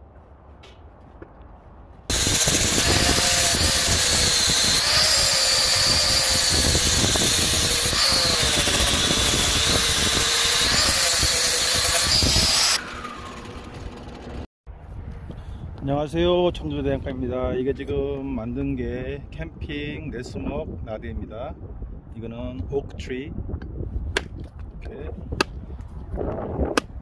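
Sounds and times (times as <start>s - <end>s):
angle grinder cutting steel: 2.1s - 14.5s.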